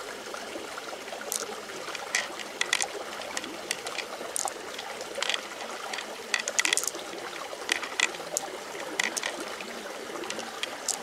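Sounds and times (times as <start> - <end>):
pearls clicking: 1.3 - 9.5, 10.2 - 11.0.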